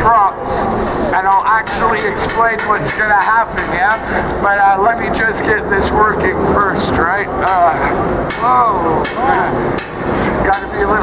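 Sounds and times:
man's voice: 0.0s - 11.0s.

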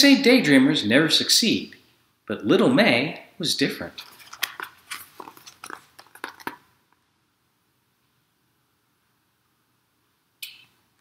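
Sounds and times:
book handled with clicks and rustles: 4.0s - 6.7s.

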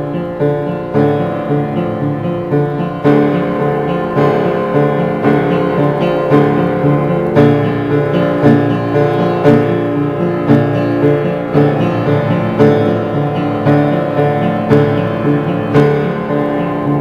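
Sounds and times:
slow dark piano piece: 0.0s - 17.0s.

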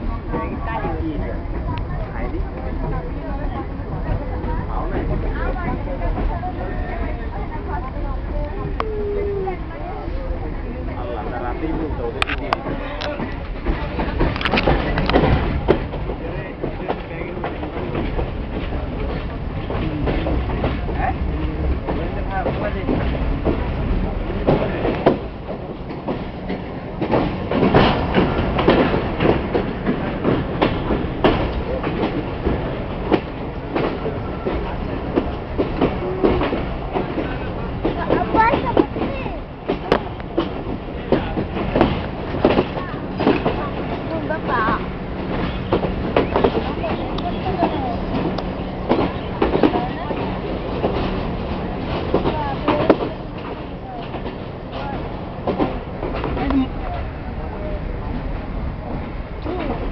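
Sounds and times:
faint voices: 0.0s - 59.9s
train rumble: 0.0s - 59.9s
wheels clacking over rail joints: 12.1s - 59.9s.

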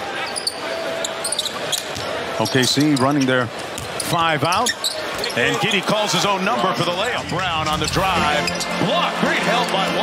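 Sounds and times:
arena crowd noise: 0.0s - 10.0s
shoe squeaks: 0.2s - 5.7s, 8.2s - 8.8s.

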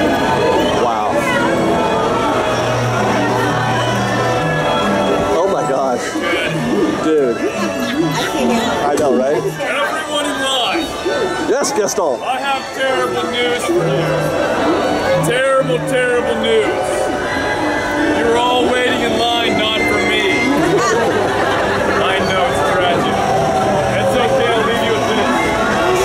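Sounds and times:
background music: 0.0s - 9.7s, 10.8s - 26.0s
crowd chatter: 0.0s - 26.0s.

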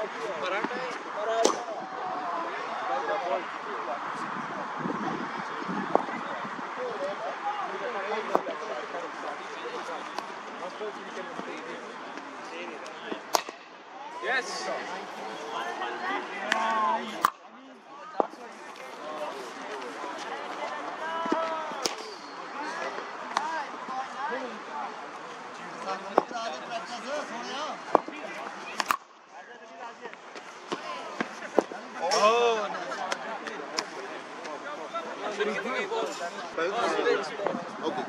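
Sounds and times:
background chatter of voices: 0.0s - 38.0s
cricket ball impacts: 8.2s - 8.6s, 12.9s - 13.7s, 26.1s - 26.4s, 27.9s - 29.0s.

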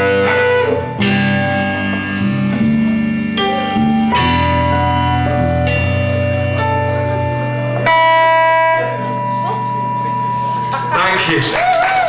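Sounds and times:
rock band chord ringing: 0.0s - 11.5s.

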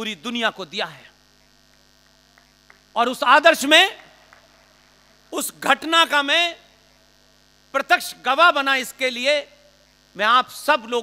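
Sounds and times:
low electrical mains hum: 0.0s - 11.0s.

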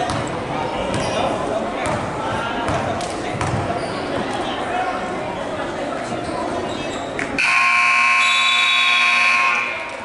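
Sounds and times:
crowd chatter: 0.0s - 10.0s
scoreboard buzzer: 7.4s - 9.8s.

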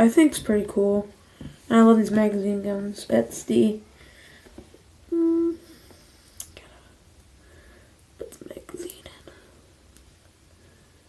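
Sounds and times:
boy whispering: 5.1s - 5.9s, 8.2s - 9.5s.

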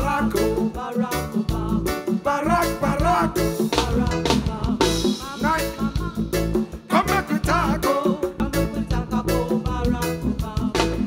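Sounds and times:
women singing: 0.0s - 6.3s
reggae band playing: 0.0s - 11.0s.

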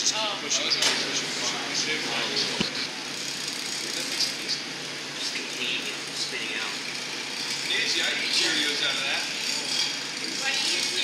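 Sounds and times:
furnaces and exhaust fans rushing: 0.0s - 11.0s.

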